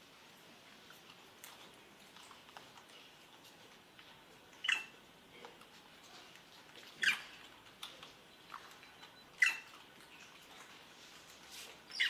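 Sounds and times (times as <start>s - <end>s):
monkey squeaking: 4.6s - 4.9s, 7.0s - 7.3s, 9.2s - 9.7s.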